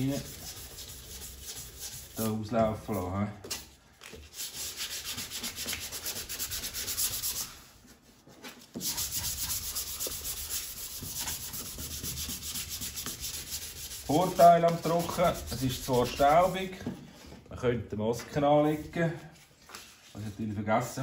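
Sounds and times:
sandpaper rubbing by hand: 0:00.0 - 0:02.3, 0:04.3 - 0:07.7, 0:08.8 - 0:16.8.

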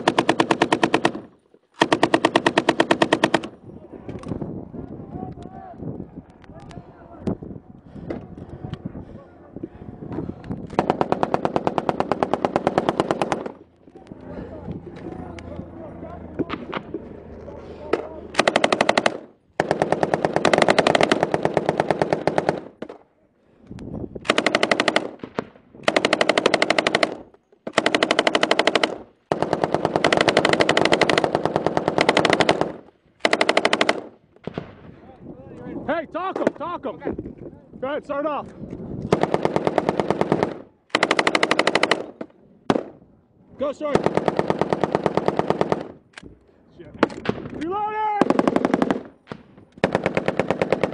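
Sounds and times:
machine gun automatic fire: 0:00.0 - 0:03.6, 0:10.7 - 0:13.6, 0:18.3 - 0:22.9, 0:24.2 - 0:34.8, 0:39.1 - 0:42.9, 0:43.9 - 0:46.0, 0:48.2 - 0:49.2, 0:49.8 - 0:50.9.

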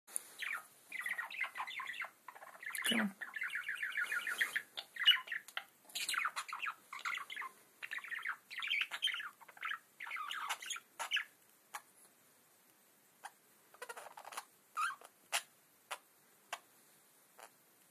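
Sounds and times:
budgerigar warbling and chattering: 0:00.4 - 0:11.9, 0:13.8 - 0:16.0.

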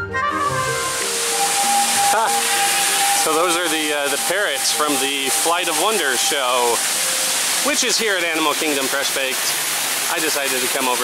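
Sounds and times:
intro music: 0:00.0 - 0:08.6
steady high tone: 0:00.0 - 0:08.6
loud rushing noise: 0:00.6 - 0:07.7.

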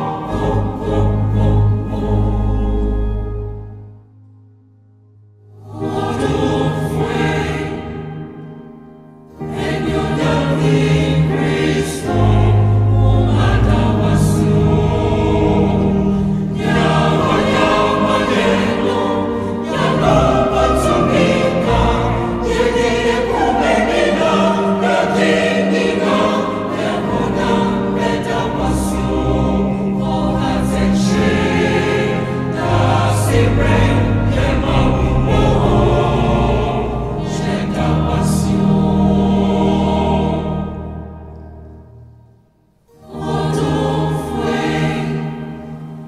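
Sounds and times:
choir singing a hymn: 0:00.0 - 0:04.0, 0:05.5 - 0:42.0, 0:42.9 - 0:46.0
sustained low accompaniment notes: 0:00.0 - 0:42.4.

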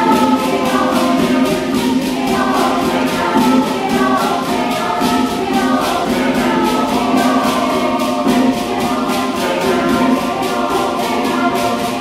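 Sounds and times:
choir singing in harmony: 0:00.0 - 0:12.0
hand drum beat: 0:00.0 - 0:12.0.

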